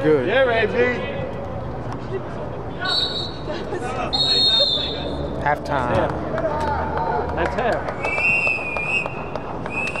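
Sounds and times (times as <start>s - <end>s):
referee's whistle blast: 2.8s - 3.4s, 4.1s - 5.0s.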